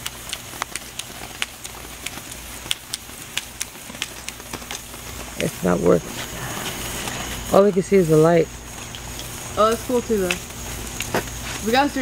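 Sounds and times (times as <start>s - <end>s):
sparkler crackling: 0.0s - 12.0s.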